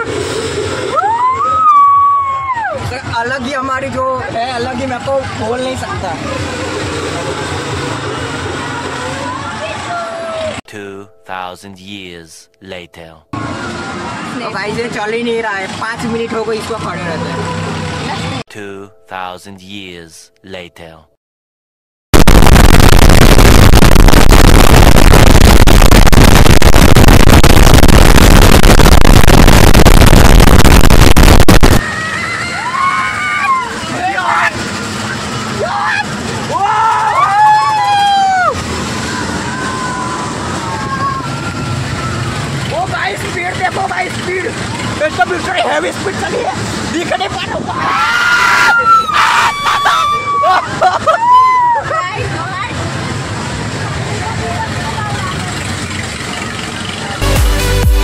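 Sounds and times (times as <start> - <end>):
fairground din: 0.0 - 21.0, 31.2 - 58.0
loud distorted blast of noise: 22.1 - 31.9.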